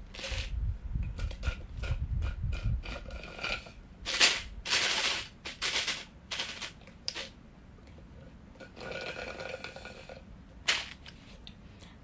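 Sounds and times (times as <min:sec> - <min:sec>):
slurping through a straw: 0:08.6 - 0:10.2.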